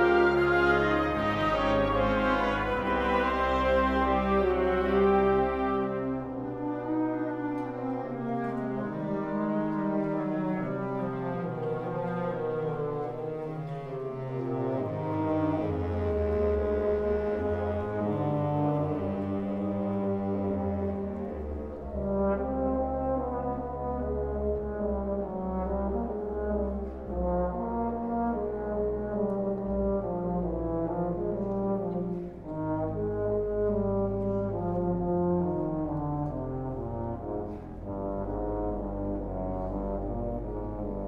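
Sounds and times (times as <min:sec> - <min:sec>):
wind ensemble playing held chords: 0:00.0 - 0:41.0.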